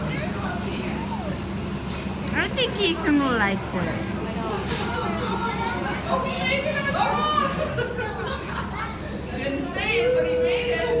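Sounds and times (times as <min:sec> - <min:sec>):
children chattering and squealing: 0:00.0 - 0:11.0.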